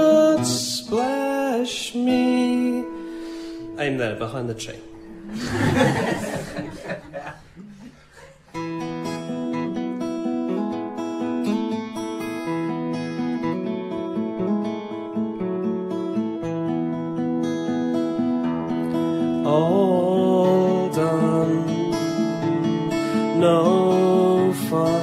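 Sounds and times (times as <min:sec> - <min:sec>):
acoustic guitar picking: 0:00.0 - 0:07.8, 0:08.5 - 0:25.0.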